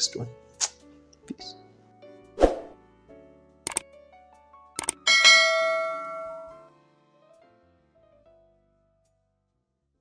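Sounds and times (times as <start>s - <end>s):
soft background music: 0.0s - 10.0s
short clicks: 3.6s - 3.9s, 4.8s - 5.0s
bright bell chime: 5.1s - 6.7s.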